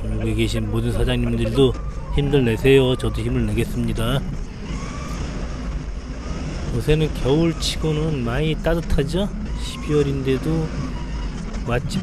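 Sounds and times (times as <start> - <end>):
forklift engine humming: 0.0 - 12.0.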